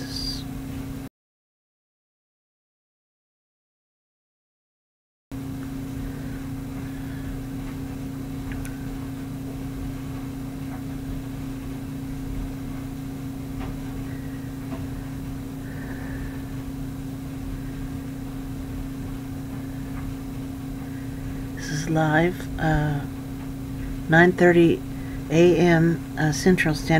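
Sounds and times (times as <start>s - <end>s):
steady low hum: 0.0s - 1.1s, 5.3s - 26.9s
faint clicks: 8.4s - 8.8s.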